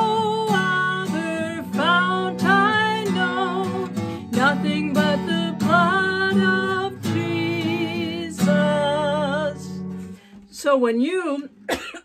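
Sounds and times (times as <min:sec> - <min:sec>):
acoustic guitar chord: 0:00.0 - 0:10.4
woman coughing: 0:11.7 - 0:12.0.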